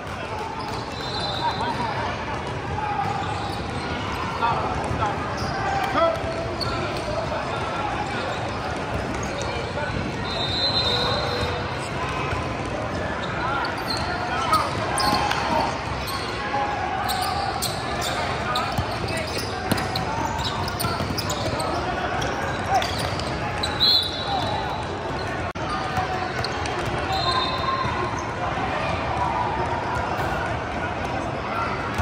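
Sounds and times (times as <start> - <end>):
players' voices echoing: 0.0 - 32.0.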